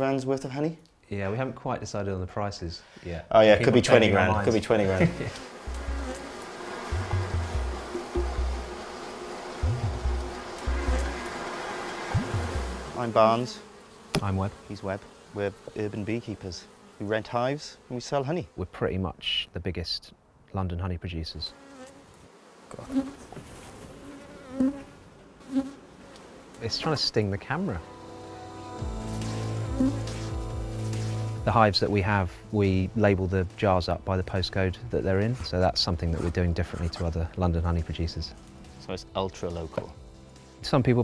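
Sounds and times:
honeybees buzzing: 3.8s - 19.0s, 21.4s - 37.4s.

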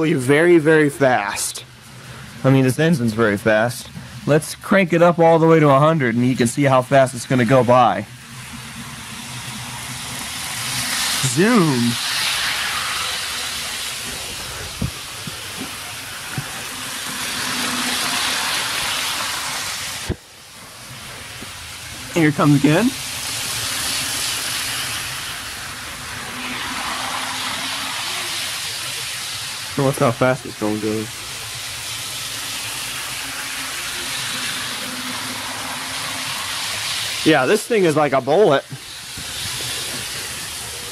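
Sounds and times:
model train motor whirring: 7.5s - 40.9s.

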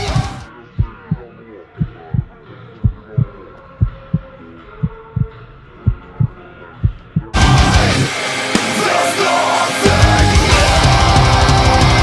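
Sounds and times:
heartbeat thumps: 0.0s - 7.6s.

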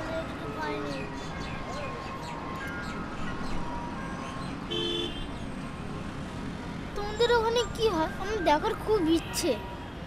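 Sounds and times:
street traffic noise: 0.0s - 10.0s
vehicle horn honk: 4.7s - 5.3s.

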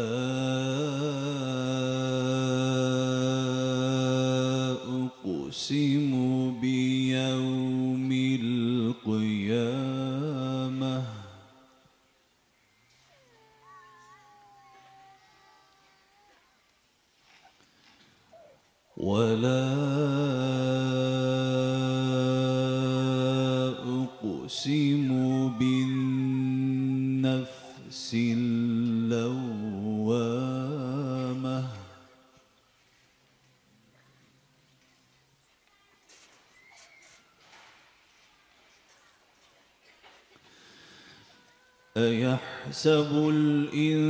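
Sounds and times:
man chanting into a microphone: 0.0s - 11.6s, 19.0s - 32.1s, 41.9s - 44.0s.

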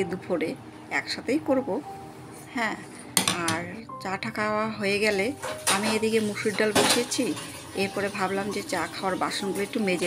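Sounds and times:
dishes and cutlery clattering: 5.4s - 7.8s.

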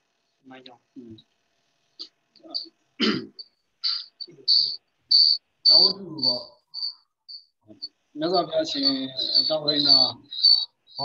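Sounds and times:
cricket chirping: 2.4s - 11.0s
man speaking: 3.9s - 4.8s, 5.7s - 6.6s, 7.7s - 11.0s.

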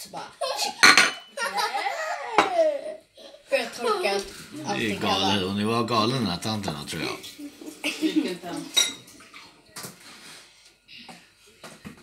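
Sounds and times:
cutlery clinking on plates: 0.7s - 1.3s, 8.6s - 10.0s.

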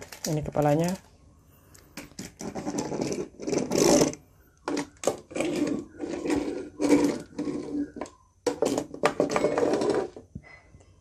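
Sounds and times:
plastic toy wheels rolling on wood: 0.0s - 1.1s, 2.0s - 10.4s.

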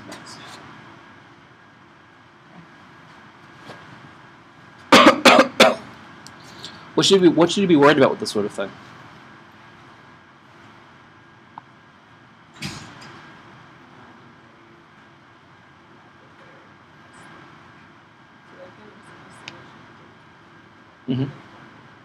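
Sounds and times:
faint steady hum: 0.0s - 22.0s
brief thump or rustle: 12.6s - 13.2s.

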